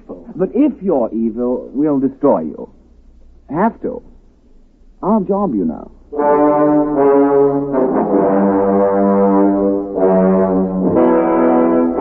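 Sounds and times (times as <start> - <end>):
sustained brass chords: 6.1 - 12.0.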